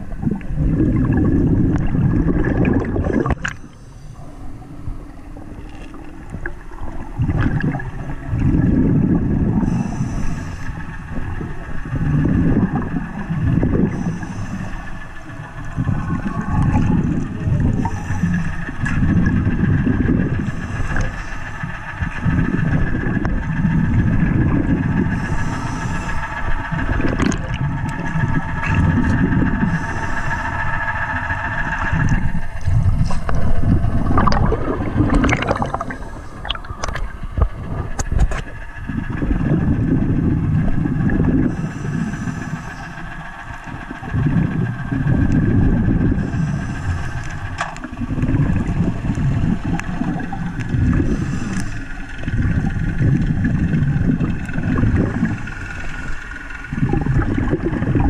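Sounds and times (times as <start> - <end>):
water surging and gurgling: 0.0 - 21.3, 22.0 - 41.6, 43.6 - 58.0
high whine through water: 0.0 - 58.0.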